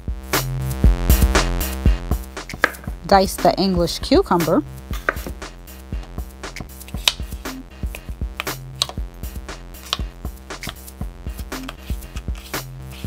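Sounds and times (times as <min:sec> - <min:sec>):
electronic beat music with bass: 0:00.0 - 0:13.0.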